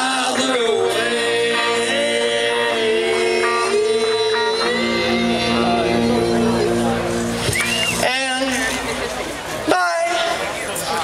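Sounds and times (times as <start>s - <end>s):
band chord on guitars and bass: 0.0s - 9.4s
short whistle: 7.4s - 8.1s.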